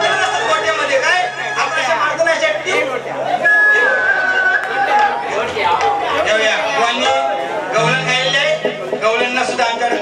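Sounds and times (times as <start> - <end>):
crowd chatter: 0.0 - 10.0
man's voice over pa system: 6.3 - 10.0.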